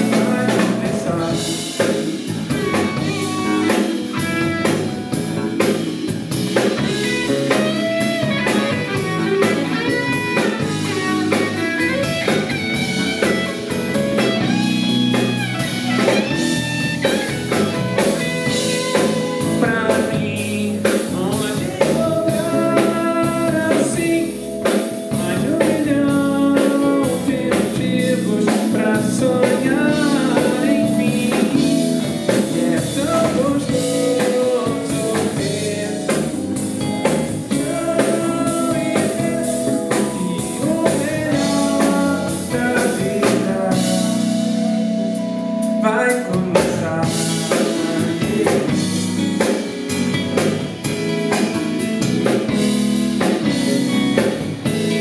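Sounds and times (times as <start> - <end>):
man singing: 0.0 - 4.8, 18.0 - 36.6, 37.3 - 44.6, 45.8 - 49.6, 53.4 - 55.0
drum kit: 0.0 - 55.0
electric bass: 0.0 - 55.0
electric guitar: 0.0 - 55.0
keyboards: 0.0 - 55.0.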